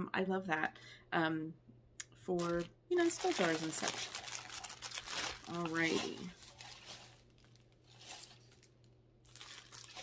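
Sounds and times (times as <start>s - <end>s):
low steady hum: 0.0s - 10.0s
packaging rustling: 2.4s - 10.0s.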